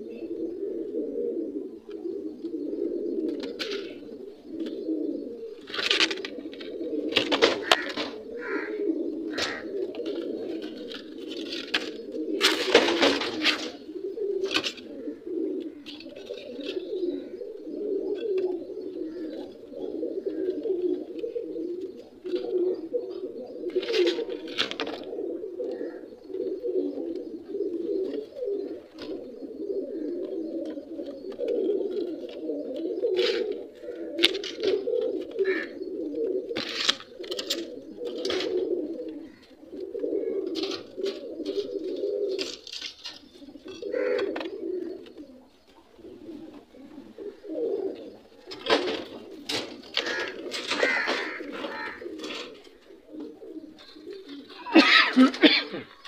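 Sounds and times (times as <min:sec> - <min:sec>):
pigeons cooing: 0:00.0 - 0:56.0
rustles: 0:01.6 - 0:56.0.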